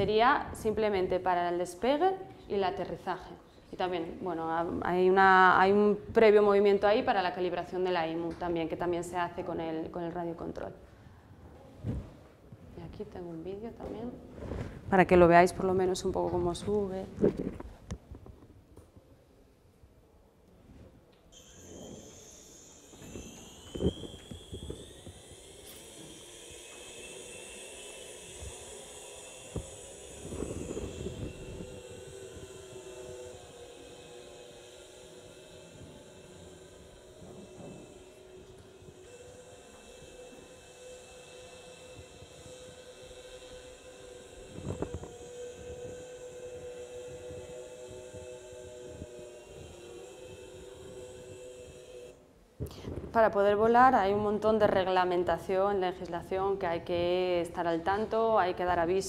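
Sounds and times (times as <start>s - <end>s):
drone motors whining: 21.4s - 52.4s.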